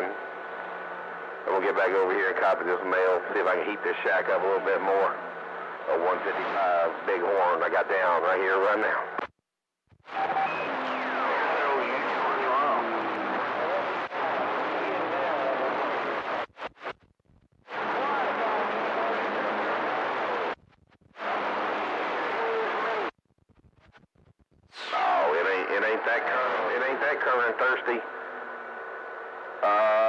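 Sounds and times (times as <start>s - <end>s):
faint garbled radio voices: 0.0s - 9.3s, 10.1s - 16.9s, 17.6s - 23.1s, 24.8s - 29.0s, 29.6s - 30.0s
radio static hiss: 0.0s - 9.4s, 10.0s - 30.0s.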